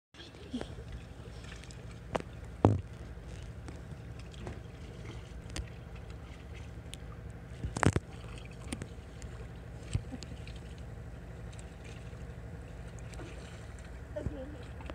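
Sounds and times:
boat motor idling: 0.2s - 14.9s
knocks against inflatable boat: 2.6s - 2.9s.

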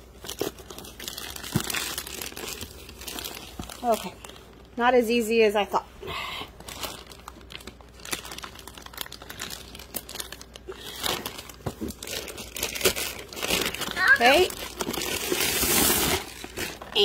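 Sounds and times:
plastic envelope crinkling: 0.0s - 4.8s, 6.6s - 17.0s.

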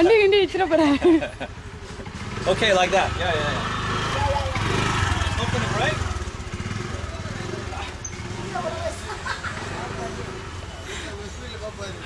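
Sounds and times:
motorbike engine idling: 0.0s - 12.0s.

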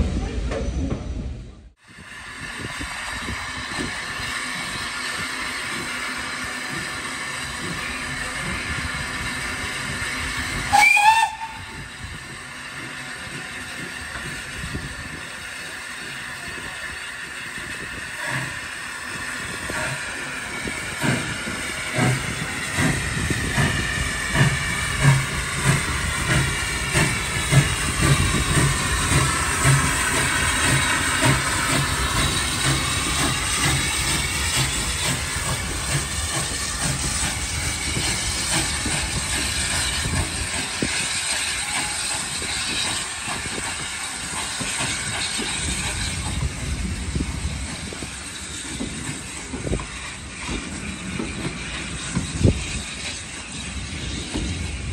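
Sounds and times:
steam hissing: 1.8s - 54.9s
locomotive exhaust beats: 2.3s - 54.9s
steam locomotive whistle: 10.5s - 12.2s, 21.9s - 46.2s.

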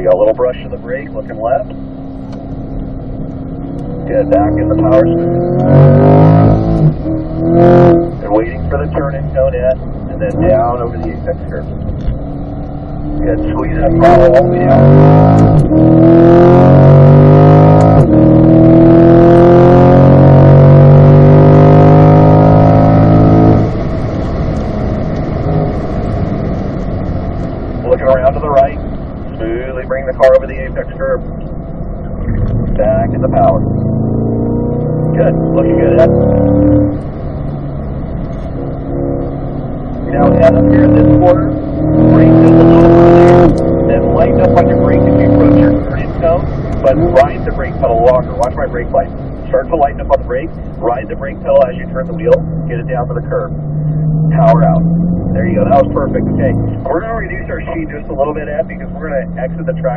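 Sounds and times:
car engine at full throttle: 0.0s - 59.9s.

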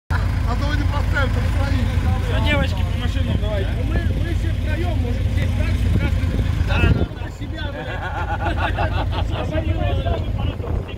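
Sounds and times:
steady low rumble: 0.1s - 10.9s
people talking: 0.5s - 10.9s.

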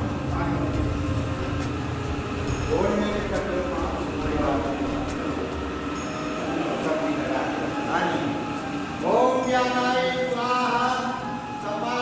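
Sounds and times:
steady rumbling: 0.0s - 9.3s.

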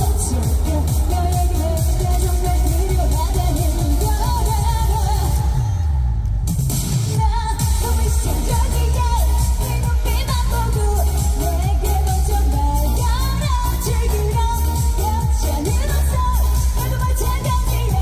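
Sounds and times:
woman singing into microphone: 0.0s - 6.0s, 7.1s - 18.0s
backing track with heavy bass: 0.0s - 18.0s.

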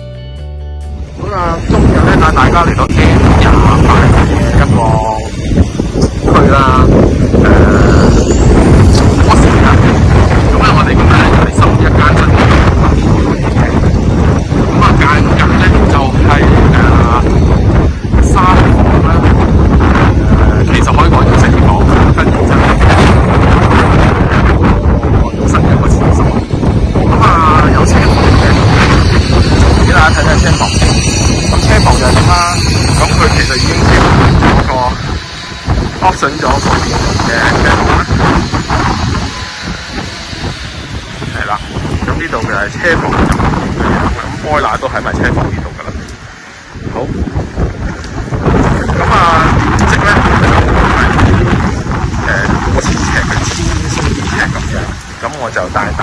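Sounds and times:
wind buffeting microphone: 1.0s - 56.0s
people talking: 1.2s - 5.3s, 6.0s - 8.3s, 8.9s - 13.9s, 14.8s - 17.4s, 18.2s - 19.2s, 20.2s - 23.2s, 24.1s - 35.0s, 36.0s - 39.4s, 41.3s - 46.0s, 47.0s - 47.2s, 48.6s - 56.0s.

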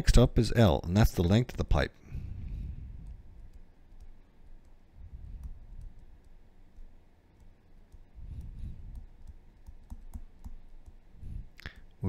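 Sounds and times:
stylus tapping on tablet screen: 3.0s - 11.1s.

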